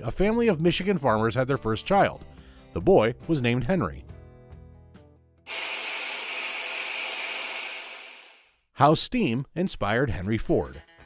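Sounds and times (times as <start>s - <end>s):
steam hiss: 5.5s - 8.4s.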